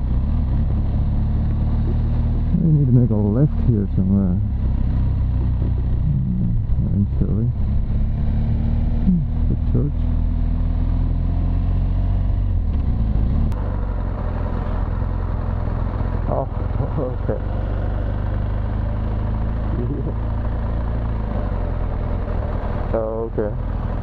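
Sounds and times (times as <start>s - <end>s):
motorcycle engine running: 0.0s - 24.0s.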